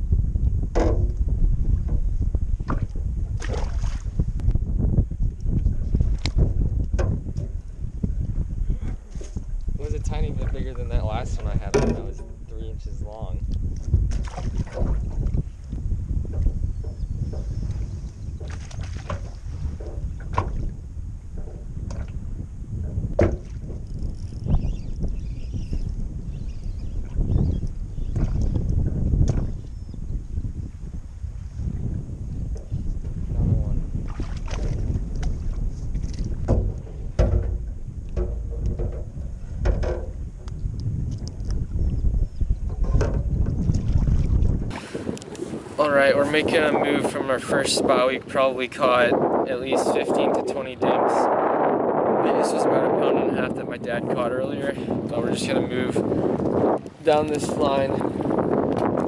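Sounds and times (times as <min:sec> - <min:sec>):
wind buffeting microphone: 0:00.0 - 0:59.0
waves lapping against boat hull: 0:00.5 - 0:04.6, 0:05.4 - 0:50.9, 0:52.2 - 0:59.0.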